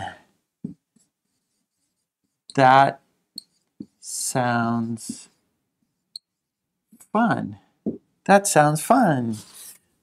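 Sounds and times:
marker scraping on whiteboard: 0.7s - 2.7s, 3.4s - 6.5s, 9.2s - 9.9s.

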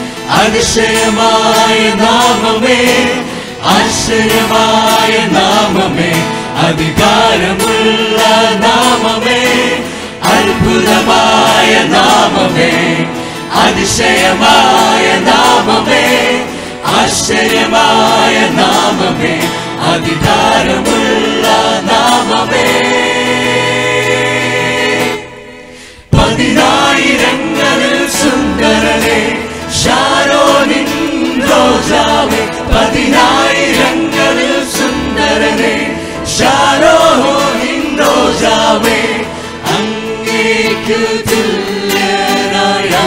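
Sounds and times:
group singing a hymn in harmony: 0.0s - 43.0s.

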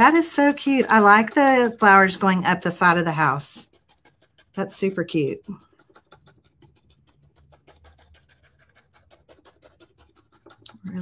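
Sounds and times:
paintbrush dabbing on napkin: 0.0s - 11.0s.

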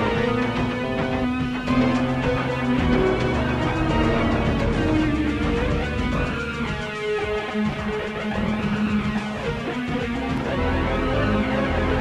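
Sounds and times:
music with guitar: 0.0s - 12.0s.

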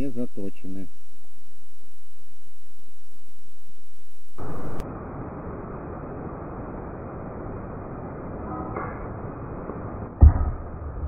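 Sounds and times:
muffled outdoor background noise: 0.0s - 11.0s
loud steady sound: 0.9s - 11.0s.

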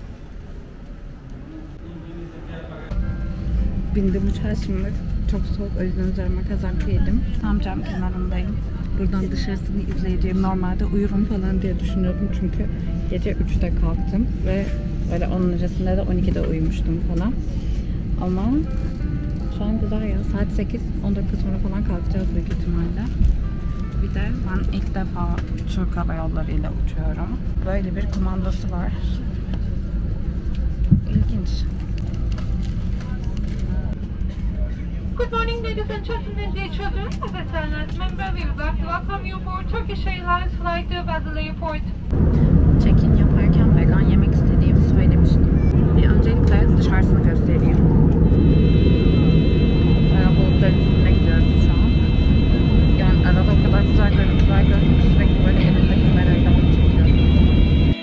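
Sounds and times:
airliner cabin rumble: 0.0s - 58.0s
jet engine and airflow rush: 34.0s - 58.0s.

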